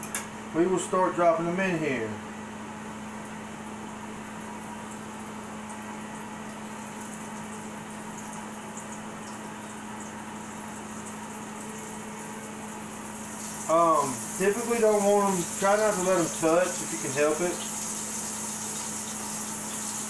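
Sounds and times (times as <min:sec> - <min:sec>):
fish frying in hot grease: 0:03.2 - 0:20.0.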